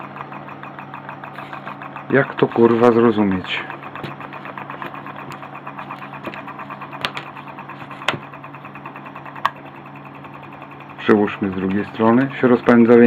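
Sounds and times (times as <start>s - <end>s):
contact breakers ticking: 0.0s - 13.0s
motor low hum: 0.0s - 13.0s.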